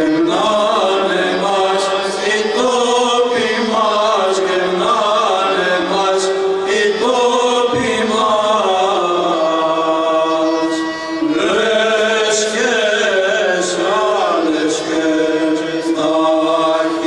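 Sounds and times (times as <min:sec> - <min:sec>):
low held drone note: 0:00.0 - 0:17.0
male choir chanting: 0:00.0 - 0:17.0.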